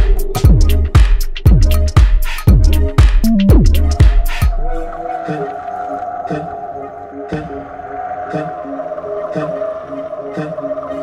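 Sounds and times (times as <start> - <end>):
held synth tone: 3.2 - 3.9.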